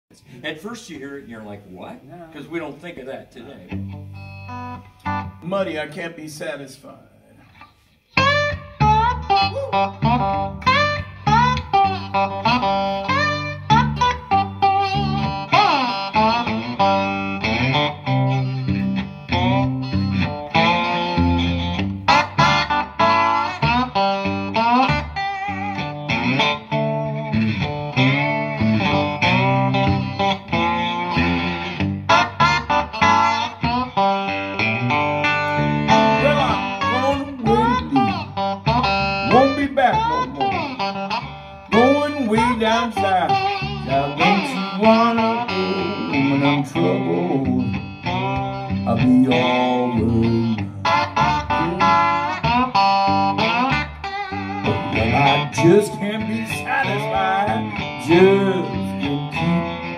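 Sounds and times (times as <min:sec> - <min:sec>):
electric guitar playing blues: 0:00.2 - 0:59.9.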